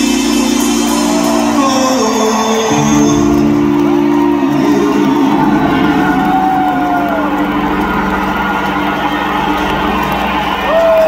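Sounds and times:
crowd cheering: 0.0 - 11.0
rock band playing: 0.0 - 11.0.

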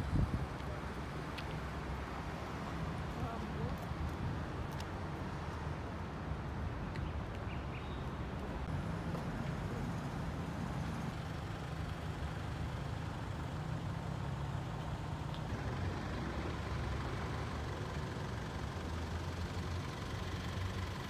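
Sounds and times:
low rumble of traffic: 0.0 - 21.0.

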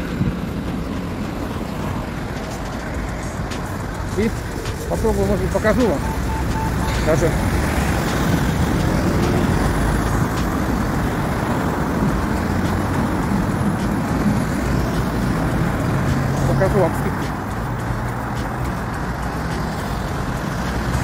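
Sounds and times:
cars passing close by: 0.0 - 21.0
brief steady beep: 5.8 - 8.0.

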